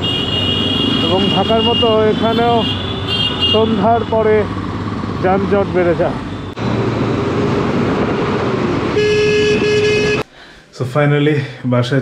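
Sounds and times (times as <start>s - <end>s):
vehicle horn: 0.0s - 4.3s, 8.9s - 10.3s
road traffic noise: 0.0s - 10.8s.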